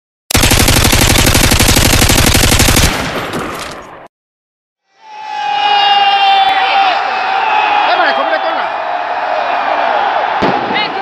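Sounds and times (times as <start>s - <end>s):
automatic gunfire: 0.3s - 3.7s
gunfire echo: 0.3s - 4.0s, 10.4s - 11.0s.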